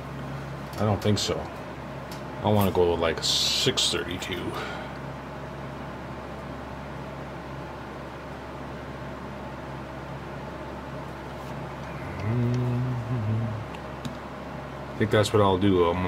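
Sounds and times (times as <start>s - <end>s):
low background hum and hiss: 0.0s - 16.0s
man humming hmm: 11.9s - 13.9s.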